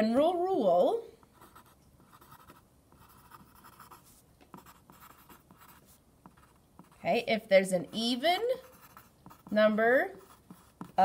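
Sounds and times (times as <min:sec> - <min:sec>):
pencil scratching on paper: 0:01.3 - 0:11.0.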